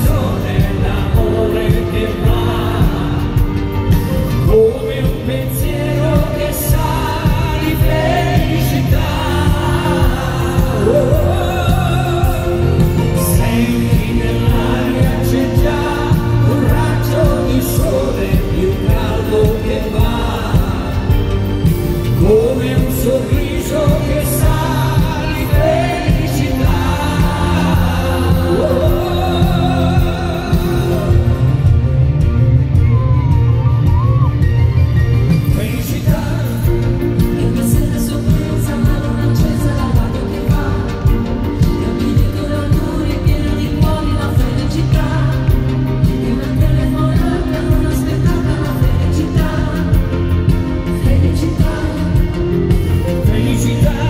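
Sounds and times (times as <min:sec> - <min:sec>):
man and woman singing duet: 0:00.0 - 0:34.4, 0:35.2 - 0:54.0
amplified band playing: 0:00.0 - 0:54.0.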